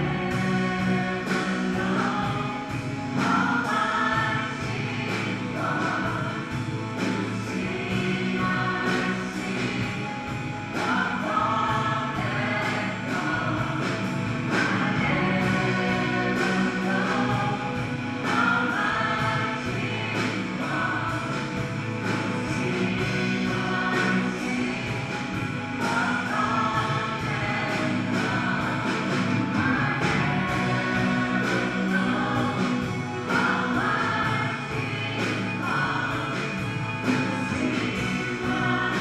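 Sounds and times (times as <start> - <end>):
amplified band accompaniment: 0.0 - 39.0
singers singing together: 0.0 - 39.0.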